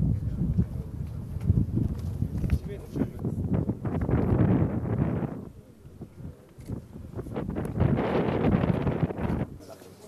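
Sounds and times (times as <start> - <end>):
wind buffeting microphone: 0.0 - 9.7.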